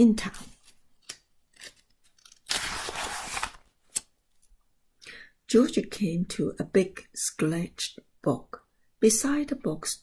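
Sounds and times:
paper page turning swish: 0:02.5 - 0:03.7.

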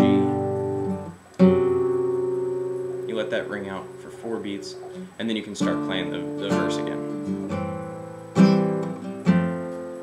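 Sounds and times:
acoustic guitar chords: 0:00.0 - 0:10.0.

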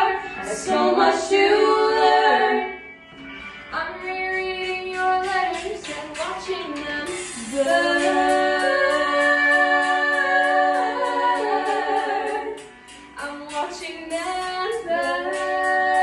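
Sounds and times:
girls singing in harmony: 0:00.0 - 0:02.9, 0:03.9 - 0:16.0.

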